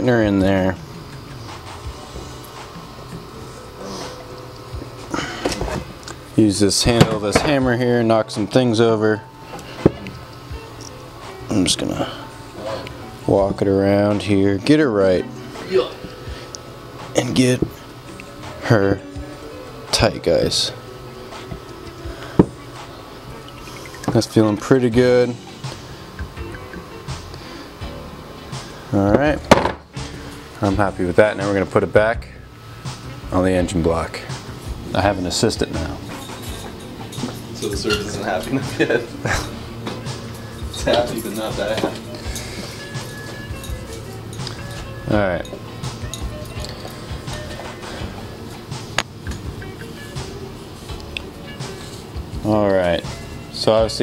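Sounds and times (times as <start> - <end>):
background music: 0.0 - 54.0.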